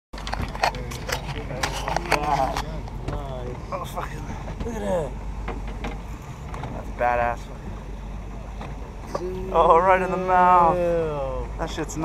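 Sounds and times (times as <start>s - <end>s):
steady low hum: 0.2s - 12.0s.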